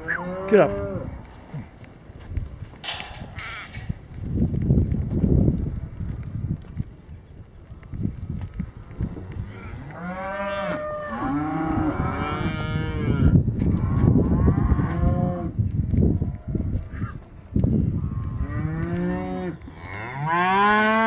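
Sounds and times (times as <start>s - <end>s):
cattle mooing: 0.0s - 1.7s, 9.2s - 15.5s, 18.1s - 21.0s.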